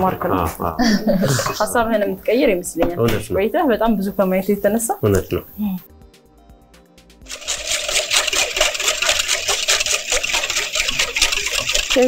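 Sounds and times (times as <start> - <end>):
faint music: 0.0 - 8.9
whisk clicking in metal bowl: 7.2 - 12.0.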